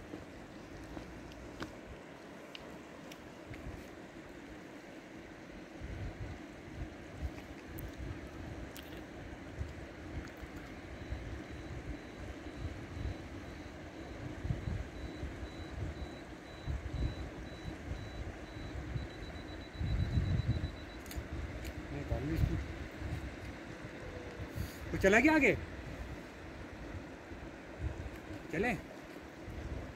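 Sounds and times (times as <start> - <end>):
river water flowing: 0.0 - 7.8
wind buffeting microphone: 18.8 - 21.6.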